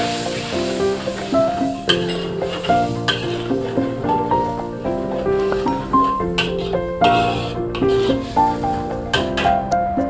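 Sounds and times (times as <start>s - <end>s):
food sizzling in a wok: 0.0s - 9.5s
background music: 0.0s - 10.0s
metal spatula scraping pan: 0.1s - 9.6s.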